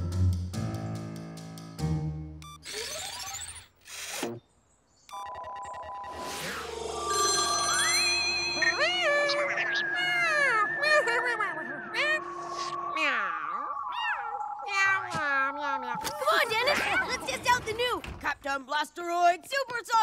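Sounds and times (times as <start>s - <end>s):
rising sweep effects: 5.6s - 15.0s
high wordless voice swooping: 8.6s - 17.4s.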